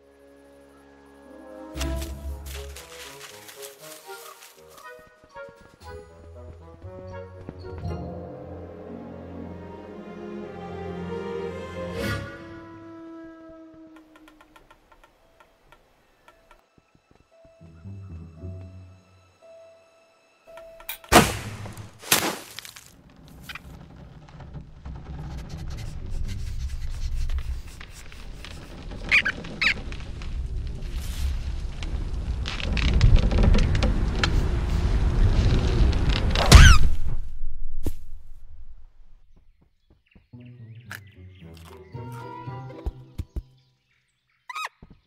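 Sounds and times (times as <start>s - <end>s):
bow shot rushing sound: 36.2s - 38.9s.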